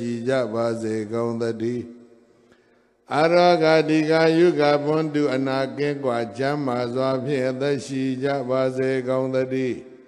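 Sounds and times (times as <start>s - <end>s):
monk chanting: 0.0s - 2.3s, 3.1s - 10.0s.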